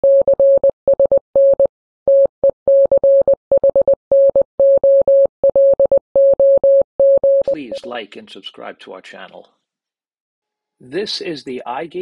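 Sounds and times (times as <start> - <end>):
morse code tone: 0.0 - 7.9.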